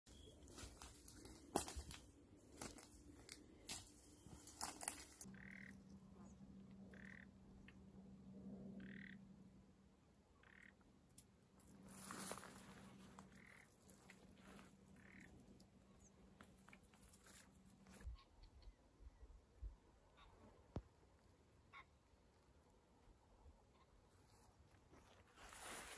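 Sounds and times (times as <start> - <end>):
short animal calls: 5.3 - 5.8.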